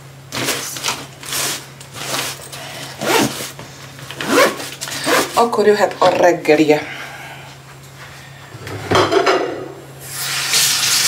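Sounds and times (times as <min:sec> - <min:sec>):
kitchenware clatter: 0:08.7 - 0:09.8.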